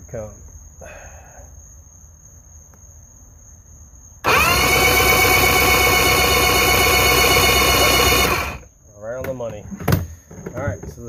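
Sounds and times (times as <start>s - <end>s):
electric starter cranking engine: 4.2s - 8.7s.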